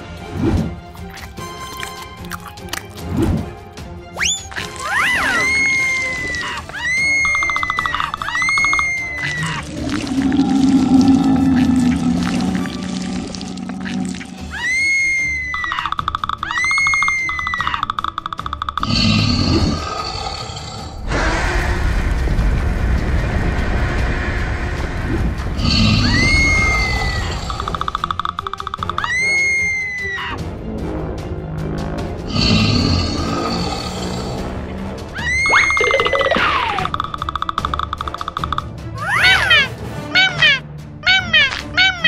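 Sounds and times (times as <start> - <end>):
cartoon music: 4.1 - 10.4, 14.3 - 19.7, 26.0 - 30.5, 35.2 - 42.0
shrill monster cries: 4.6 - 17.8, 25.6 - 27.7, 28.9 - 30.4, 35.2 - 36.9, 39.0 - 42.0
low monster roars: 9.3 - 14.5, 18.8 - 27.8, 32.3 - 34.6
dense steady rumbling: 21.0 - 27.4.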